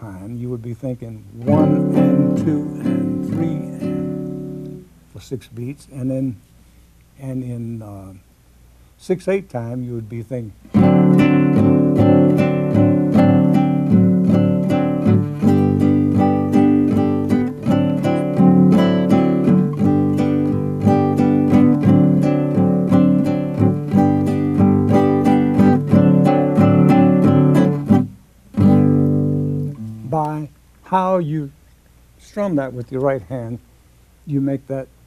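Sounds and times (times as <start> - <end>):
classical guitar strumming chords: 0.6 - 6.2, 10.6 - 31.6.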